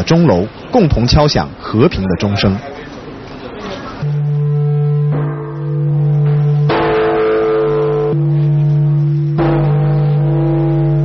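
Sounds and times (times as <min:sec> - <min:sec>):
temple bell ringing: 0:04.0 - 0:11.0.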